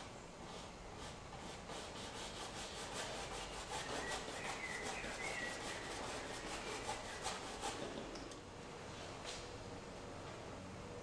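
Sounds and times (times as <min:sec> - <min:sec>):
brush rubbing paint on canvas: 0:00.4 - 0:08.0.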